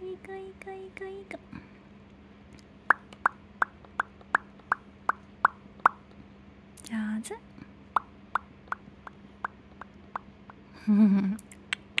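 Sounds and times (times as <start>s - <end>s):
faint low hum: 0.0s - 12.0s
parrot clicking: 2.9s - 6.1s, 8.0s - 10.6s.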